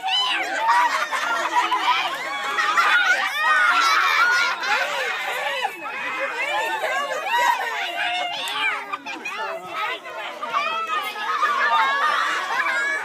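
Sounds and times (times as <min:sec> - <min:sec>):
children chattering and calling out: 0:00.0 - 0:13.0.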